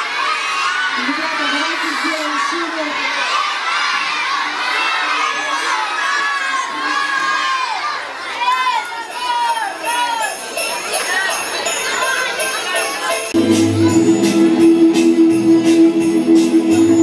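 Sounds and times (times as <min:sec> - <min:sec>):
children shouting and cheering: 0:00.0 - 0:15.2
bells jingling: 0:08.8 - 0:17.0.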